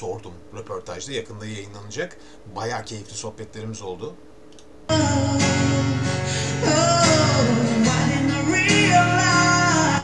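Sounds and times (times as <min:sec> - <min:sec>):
man singing: 0:04.9 - 0:10.0
strummed acoustic guitar: 0:04.9 - 0:10.0.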